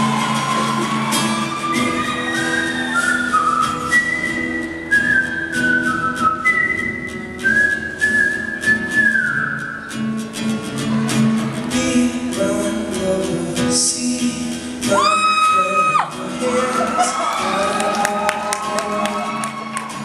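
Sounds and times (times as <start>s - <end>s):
strummed acoustic guitar: 0.0s - 20.0s
man whistling a melody: 1.5s - 10.1s.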